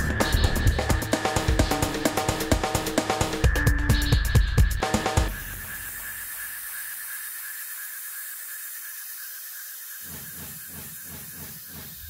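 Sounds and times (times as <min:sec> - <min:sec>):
faint high whine: 0:00.0 - 0:12.0
steady hiss: 0:00.0 - 0:12.0.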